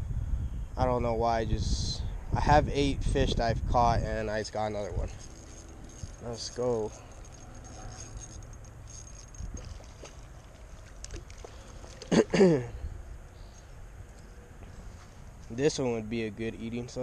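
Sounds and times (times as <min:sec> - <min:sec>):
steady low rumble: 0:00.0 - 0:17.0
fish splashing at surface: 0:09.5 - 0:12.2.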